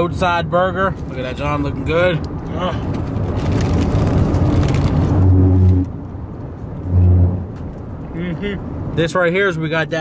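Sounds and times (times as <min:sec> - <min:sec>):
car cabin road noise: 0:00.0 - 0:10.0
short low hums: 0:06.8 - 0:07.5.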